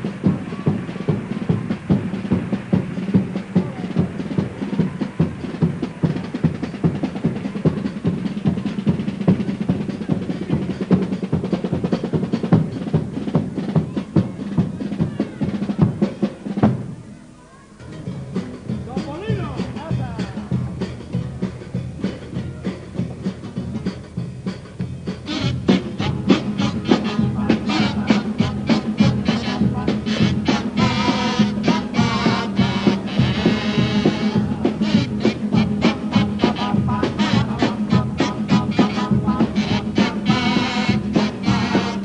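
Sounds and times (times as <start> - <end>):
snare and bass drum beat: 0.0 - 17.0, 18.0 - 42.0.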